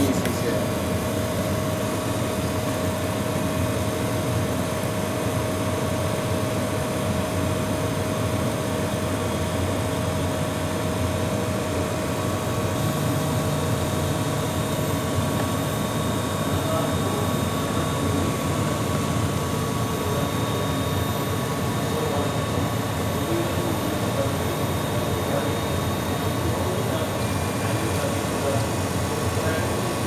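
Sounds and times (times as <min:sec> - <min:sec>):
laser engraving machine drone: 0:00.0 - 0:30.0.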